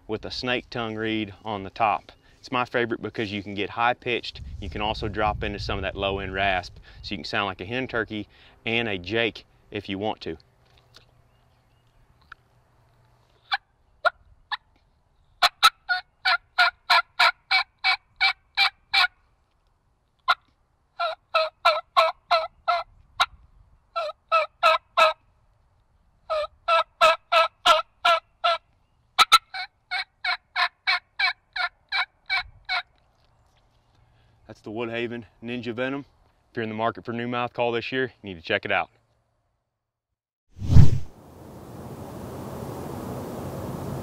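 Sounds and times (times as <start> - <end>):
turkey call yelps: 15.4 - 19.1, 21.0 - 22.8, 24.0 - 25.2, 26.3 - 28.6, 29.2 - 32.9.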